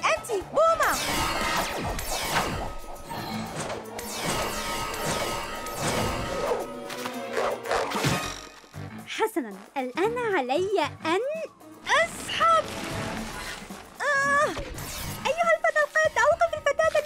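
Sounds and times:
cartoon action music: 0.0 - 17.0.

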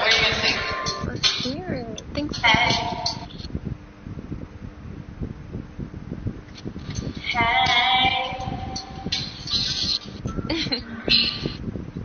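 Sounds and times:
woman singing unaccompanied: 0.0 - 0.9, 1.5 - 3.2, 7.2 - 9.1.

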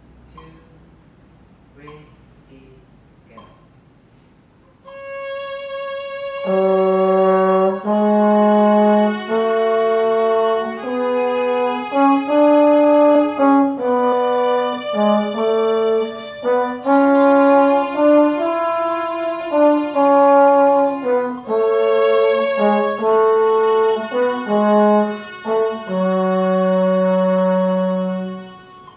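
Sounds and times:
violin playing: 4.9 - 28.9
trombone playing: 5.4 - 28.9.

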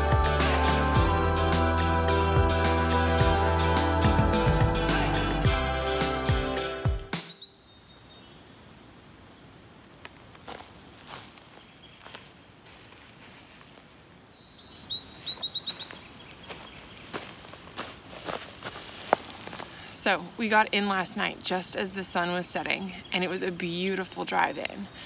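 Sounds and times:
bird chirping: 7.1 - 8.6, 14.4 - 17.2, 22.1 - 25.0
footsteps crunching on frosty grass: 10.1 - 14.2, 15.0 - 20.3.

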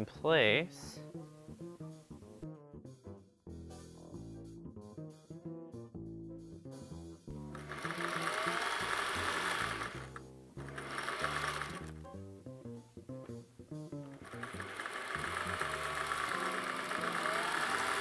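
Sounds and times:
electric sewing machine stitching: 7.6 - 12.0, 14.1 - 18.0.

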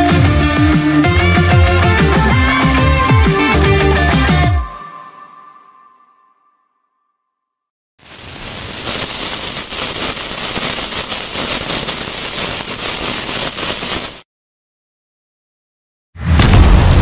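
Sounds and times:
burning fuse crackling hiss: 8.0 - 14.3.

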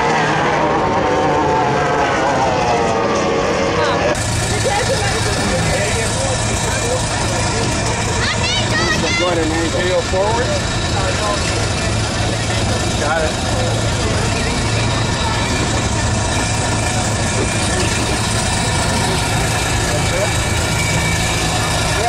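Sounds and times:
crowd chatter: 0.0 - 22.0
engine idling: 0.0 - 22.0.

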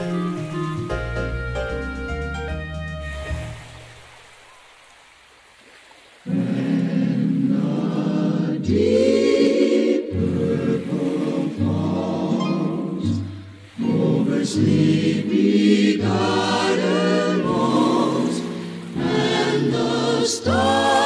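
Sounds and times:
music: 0.0 - 3.9, 8.6 - 21.0
choir singing held chords: 6.3 - 21.0.

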